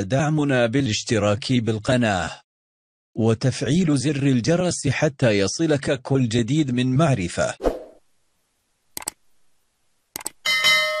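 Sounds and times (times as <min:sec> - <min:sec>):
mouse clicks: 0:09.0 - 0:09.2, 0:10.2 - 0:10.4.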